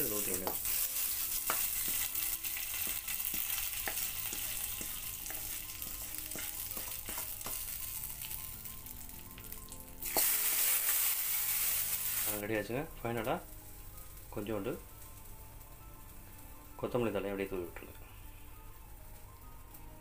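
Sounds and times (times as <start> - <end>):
hot oil sizzling: 0.0 - 19.8
wooden spatula scraping and tapping: 2.8 - 7.7.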